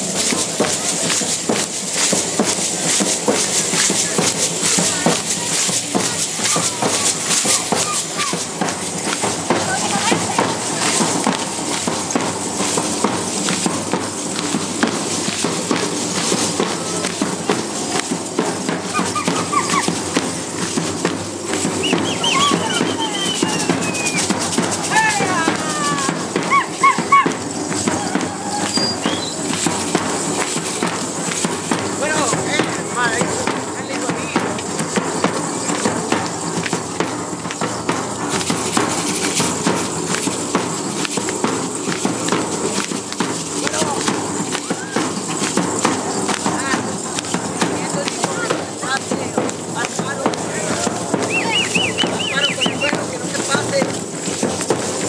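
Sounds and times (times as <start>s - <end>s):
dancers' steps and rattles: 0.0s - 55.0s
people's voices: 0.0s - 55.0s.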